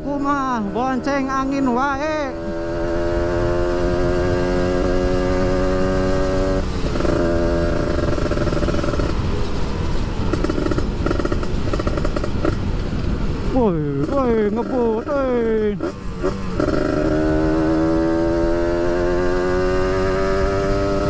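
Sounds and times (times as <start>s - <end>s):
motorcycle engine running: 0.0s - 12.9s, 13.9s - 21.0s
wind rush on microphone: 0.0s - 13.6s.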